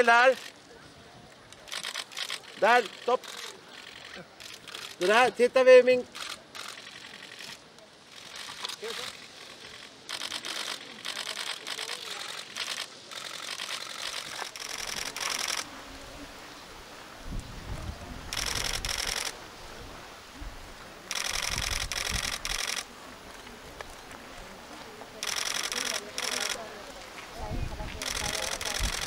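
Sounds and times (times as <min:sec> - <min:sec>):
camera shutter bursts: 0:01.6 - 0:05.2, 0:06.1 - 0:15.7, 0:18.3 - 0:19.4, 0:21.1 - 0:22.9, 0:25.2 - 0:26.7, 0:27.9 - 0:29.0.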